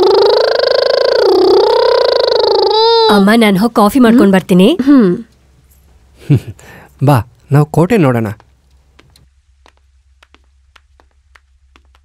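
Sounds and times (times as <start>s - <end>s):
child's long drawn-out call: 0.0s - 3.2s.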